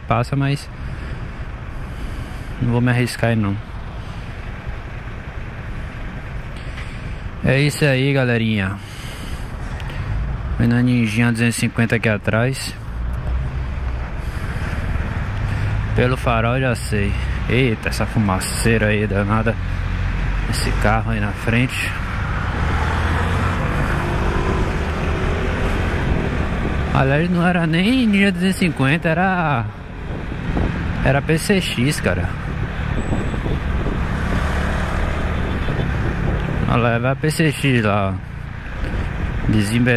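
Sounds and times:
bus passing alongside: 0.0 - 39.9
traffic engine rumble: 0.0 - 39.9
wind noise on microphone: 22.1 - 27.0, 29.8 - 31.0, 32.3 - 36.8.

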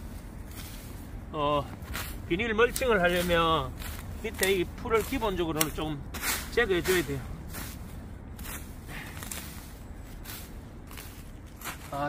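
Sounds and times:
sickle cutting dry grass: 0.0 - 12.0.

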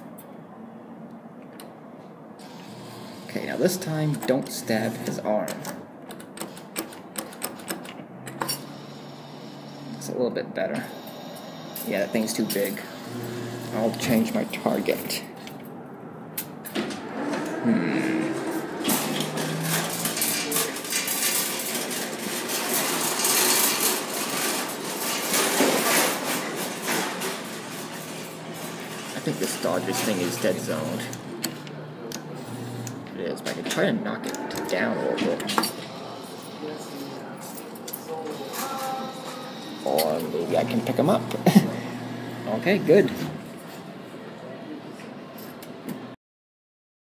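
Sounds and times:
claw machine motor hum: 2.4 - 5.6, 10.9 - 14.8, 16.8 - 25.4, 26.4 - 33.2, 34.2 - 37.3, 38.3 - 43.5.

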